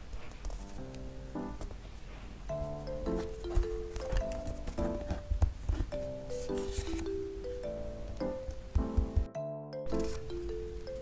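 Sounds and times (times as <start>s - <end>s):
simple background melody: 0.5s - 11.0s.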